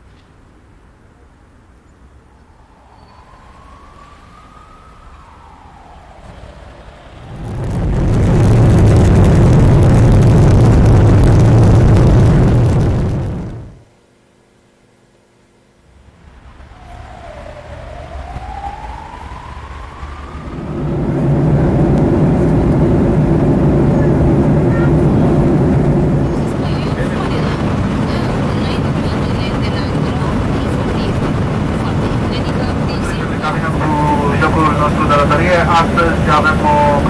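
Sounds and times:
jet engines spooling up: 2.5s - 13.8s, 16.0s - 37.0s.

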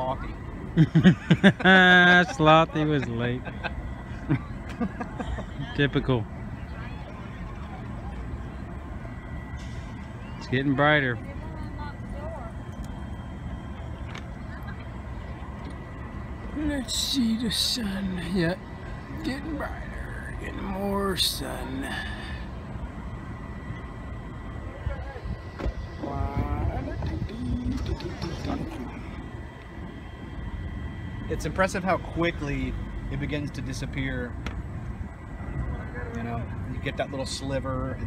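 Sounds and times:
cars driving rumble: 0.0s - 38.0s
low rumble: 22.1s - 37.1s.

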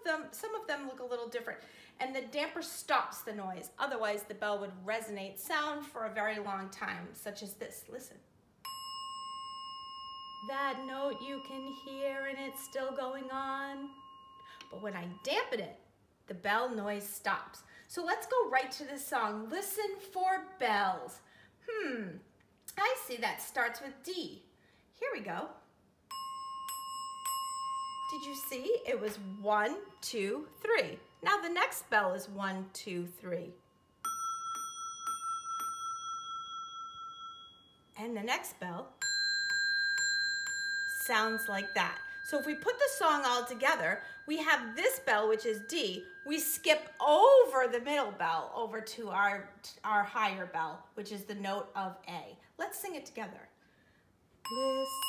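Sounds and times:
bell ringing: 8.6s - 15.5s, 26.1s - 31.6s, 33.6s - 38.0s, 39.0s - 47.0s, 54.5s - 55.0s.

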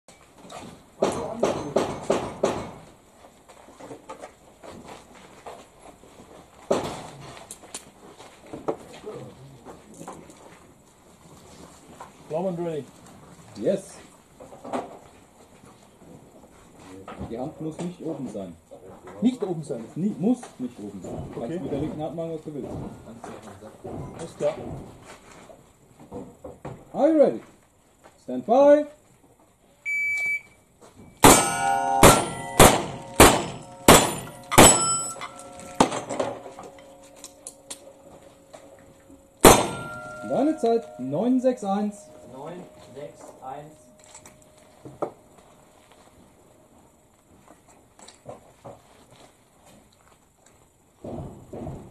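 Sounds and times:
faint background noise: 0.1s - 51.9s
shot timer beep: 29.9s - 30.6s
revolver shots: 31.2s - 36.5s, 39.4s - 41.0s
steel plate ringing: 31.2s - 44.9s.

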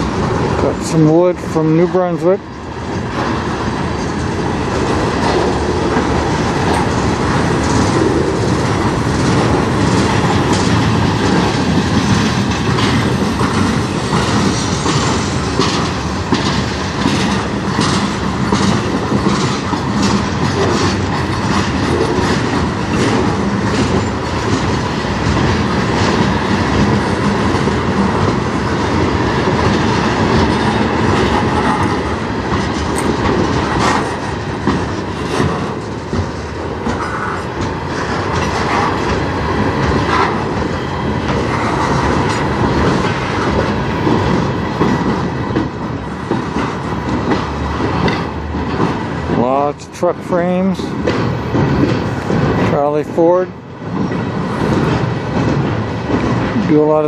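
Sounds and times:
train wheels rumbling on rail: 0.0s - 57.0s
wheels clacking over rail joints: 0.0s - 57.0s.

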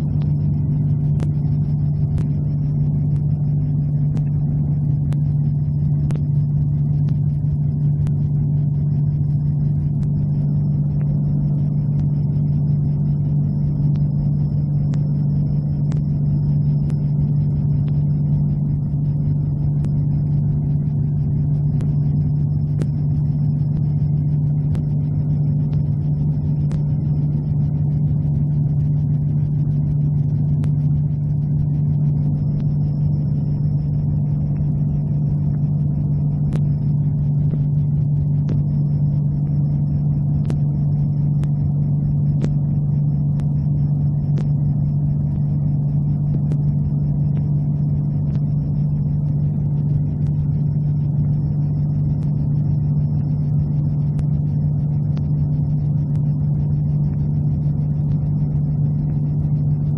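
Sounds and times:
light plane engine drone: 0.0s - 59.9s.

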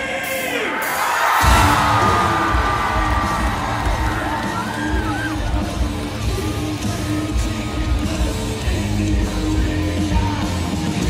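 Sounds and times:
crowd cheering and yelling: 0.0s - 11.0s
live heavy metal music: 0.0s - 11.0s.

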